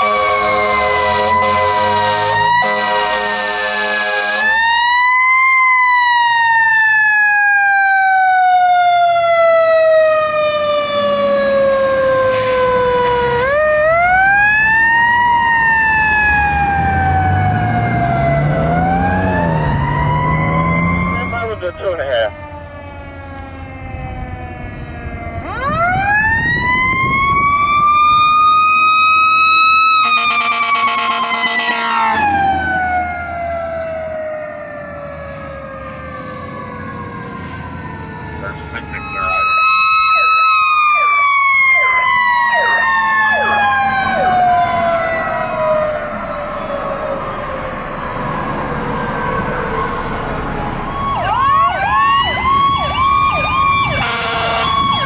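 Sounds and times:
fire truck sirens wailing: 0.0s - 55.0s.

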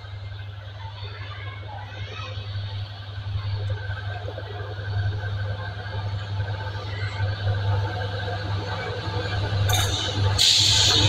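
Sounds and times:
diesel locomotive engine drone: 0.0s - 11.0s.

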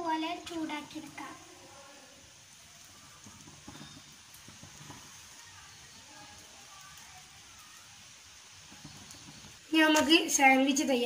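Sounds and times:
faint sizzling of bread toasting: 0.0s - 11.0s
soft taps of bread on pan: 2.8s - 7.4s, 8.6s - 10.1s.

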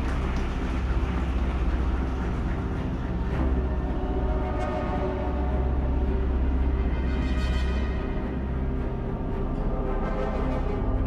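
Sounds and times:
crowd applauding: 0.0s - 3.3s
faint music: 0.0s - 11.0s.

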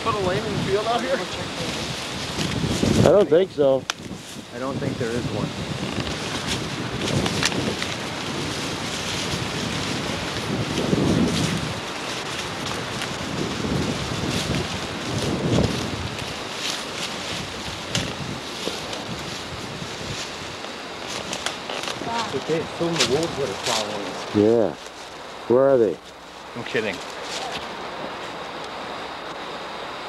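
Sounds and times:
wind buffeting microphone: 0.0s - 24.8s
footsteps crunching dry leaves: 5.6s - 25.4s, 26.0s - 28.6s.

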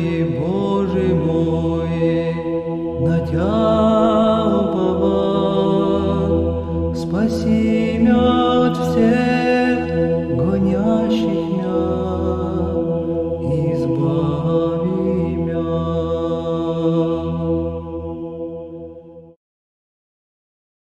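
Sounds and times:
low drone: 0.0s - 19.2s
sung chant: 0.0s - 19.4s.

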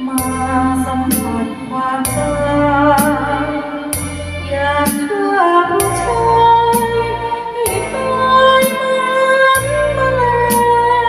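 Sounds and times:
karaoke backing track: 0.0s - 11.0s
woman singing into a microphone: 0.0s - 11.0s.

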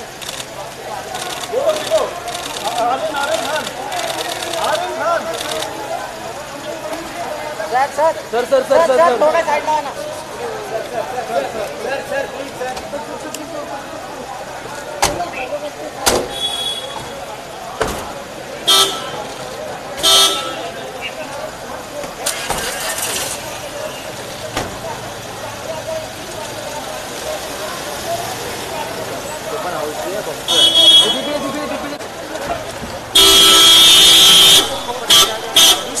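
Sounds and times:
crowd voices: 0.0s - 36.0s
street noise: 0.0s - 36.0s
vehicle horn honking: 16.3s - 17.1s, 18.7s - 19.2s, 20.0s - 20.8s, 30.5s - 31.4s, 33.1s - 36.0s.

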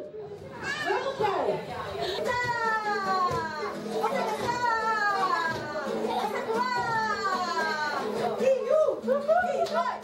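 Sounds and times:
children and adults calling out: 0.5s - 10.0s
acoustic guitar strumming: 1.9s - 9.6s.

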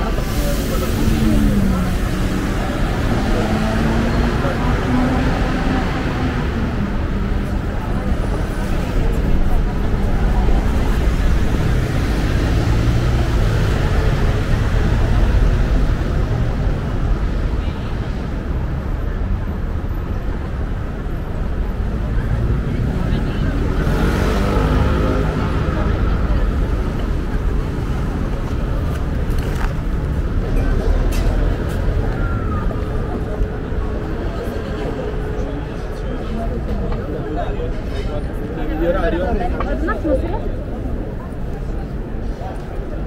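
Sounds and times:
cars driving on cobblestones: 0.0s - 43.0s.

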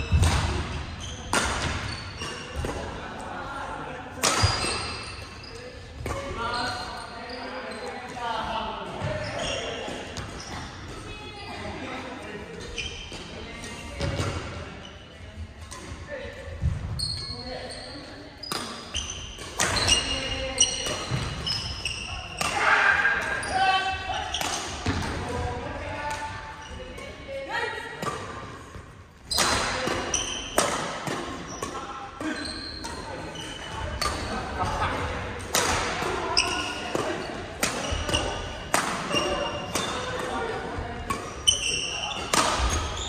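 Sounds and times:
rackets hitting shuttlecocks: 33.8s - 43.0s.

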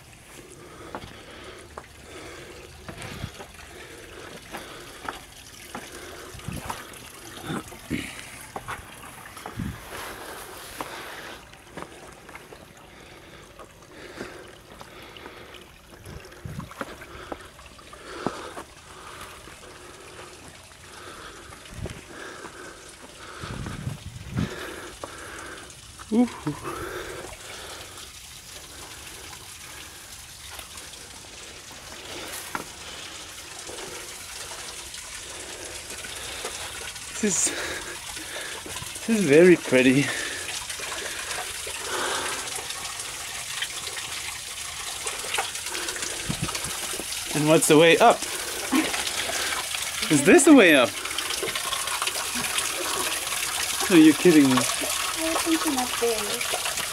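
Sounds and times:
stream trickling over rocks: 0.0s - 56.9s.

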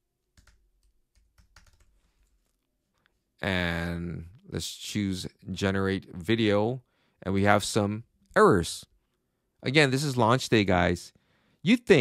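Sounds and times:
computer keyboard typing: 0.3s - 2.0s.

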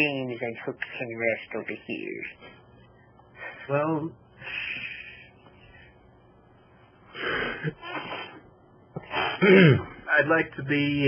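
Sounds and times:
breathy puffs of air: 4.4s - 6.1s, 7.1s - 10.1s.

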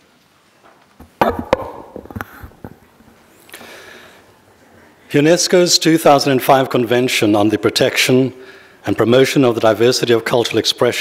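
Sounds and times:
knocks and thumps on microphone: 1.0s - 2.8s.

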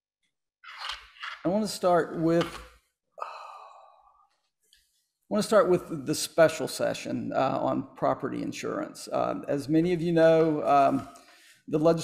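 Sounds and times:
man sighing: 3.2s - 4.0s.

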